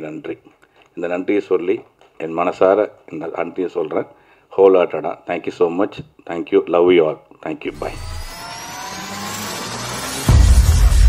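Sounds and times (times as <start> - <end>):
rising whoosh with gliding tones: 7.8 - 10.7.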